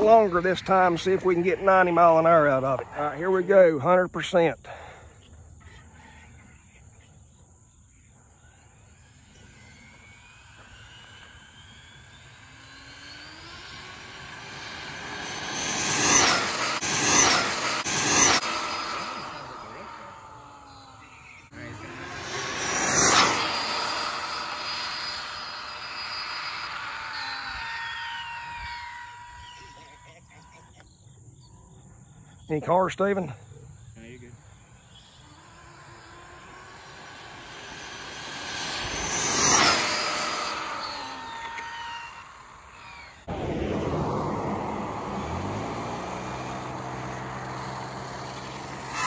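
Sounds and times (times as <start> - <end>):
electric toy car motor whining: 8.8 - 30.2, 34.8 - 43.3, 45.3 - 49.0.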